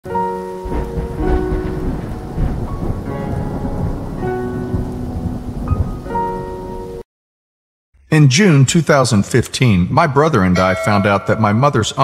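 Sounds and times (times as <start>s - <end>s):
rain: 0.1s - 7.0s
low thunder rumble: 0.6s - 6.8s.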